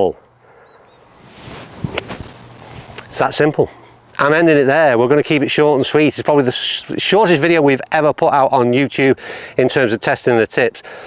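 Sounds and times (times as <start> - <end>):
faint swish of club swing: 1.2 - 3.0
golf club striking ball: 1.9 - 2.4.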